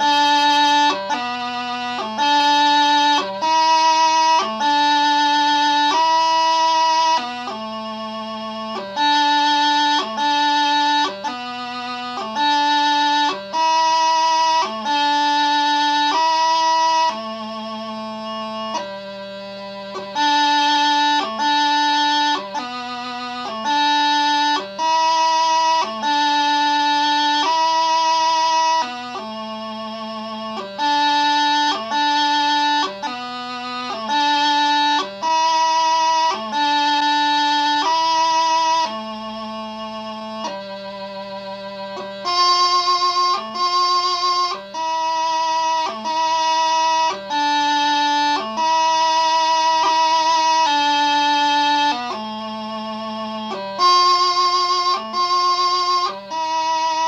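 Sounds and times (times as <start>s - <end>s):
bagpipe practice chanter melody: 0.0s - 57.0s.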